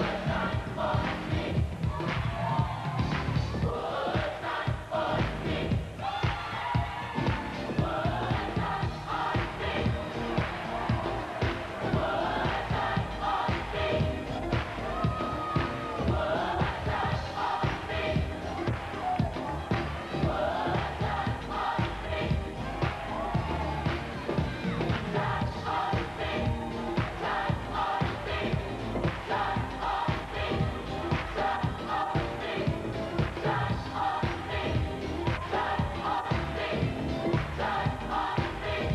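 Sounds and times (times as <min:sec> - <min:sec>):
crowd singing along: 0:00.0 - 0:38.9
gospel choir singing: 0:00.0 - 0:38.9
steady drum beat: 0:00.0 - 0:38.9.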